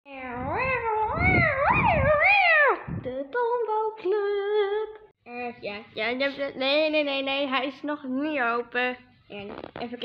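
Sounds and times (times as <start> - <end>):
long wavering cry: 0.4 - 2.9.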